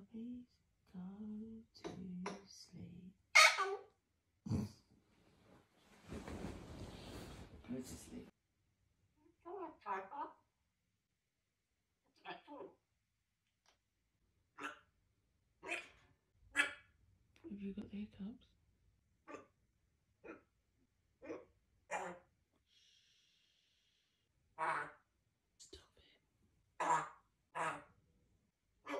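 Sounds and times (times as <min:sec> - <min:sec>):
parrot hiccups: 0:03.4 - 0:03.8, 0:15.6 - 0:16.0, 0:21.2 - 0:22.2, 0:26.8 - 0:27.9.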